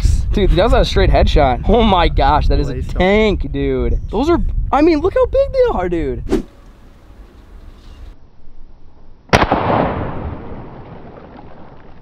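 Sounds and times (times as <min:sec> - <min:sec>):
gunshot: 0:09.3 - 0:12.0.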